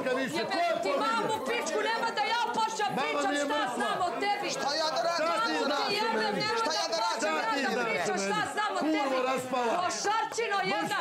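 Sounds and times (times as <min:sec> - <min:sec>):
people arguing: 0:00.0 - 0:11.0.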